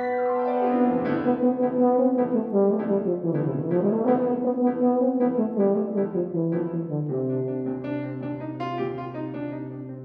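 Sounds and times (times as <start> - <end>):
tuba sustained notes: 0.0 - 7.8
piano repeated chords: 0.0 - 10.0.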